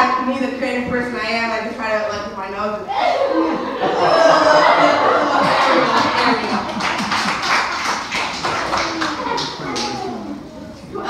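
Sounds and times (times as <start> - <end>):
audience laughing: 3.3 - 7.7, 8.3 - 10.4
sharp claps: 5.4 - 10.1.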